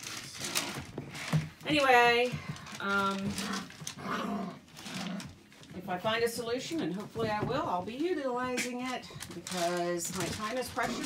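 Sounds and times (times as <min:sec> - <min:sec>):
woman saying um: 0:01.6 - 0:03.6, 0:05.8 - 0:11.0
puppies growling: 0:03.1 - 0:05.7, 0:10.2 - 0:11.0.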